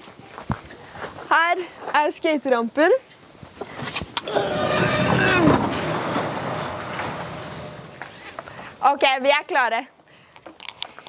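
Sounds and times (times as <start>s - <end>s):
garage door rolling up tracks: 4.3s - 8.8s.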